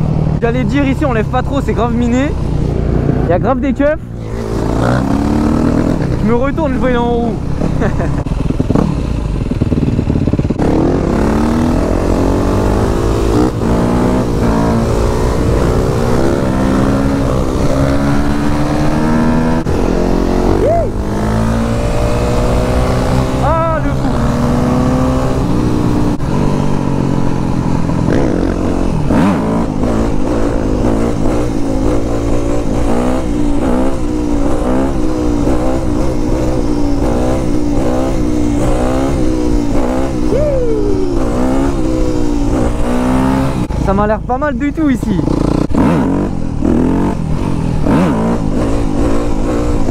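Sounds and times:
dirt bike engine accelerating: 0:00.0 - 0:49.9.

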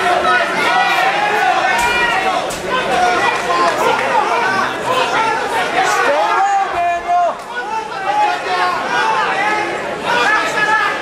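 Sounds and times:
overlapping voices in a large hall: 0:00.0 - 0:11.0.

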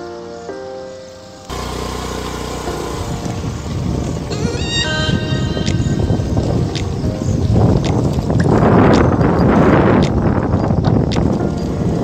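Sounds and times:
music: 0:00.0 - 0:01.5, 0:02.3 - 0:12.0
motorcycle engine: 0:01.5 - 0:05.4
wind on microphone: 0:01.5 - 0:12.0.

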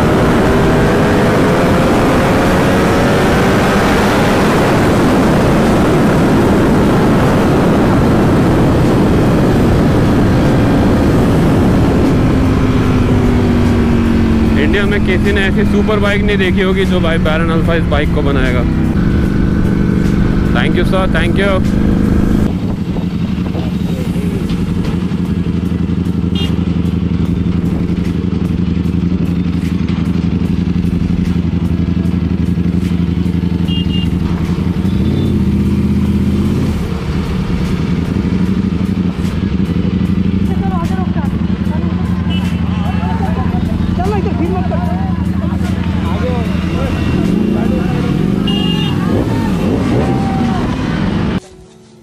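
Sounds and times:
motorcycle engine running: 0:00.0 - 0:52.0.

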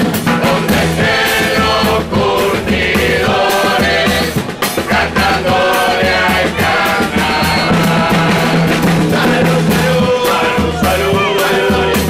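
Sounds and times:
choir singing: 0:00.0 - 0:12.0
repeating percussion strikes: 0:00.0 - 0:12.0.

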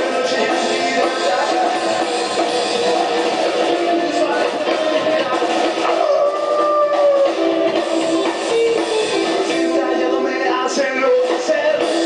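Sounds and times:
drums: 0:00.0 - 0:12.0
person singing lead vocal: 0:00.0 - 0:12.0
rockabilly band through television: 0:00.0 - 0:12.0
upright bass: 0:00.0 - 0:12.0.

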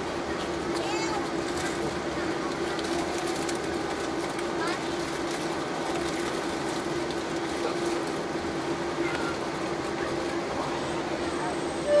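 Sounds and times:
aircraft cabin engine rush: 0:00.0 - 0:12.0.

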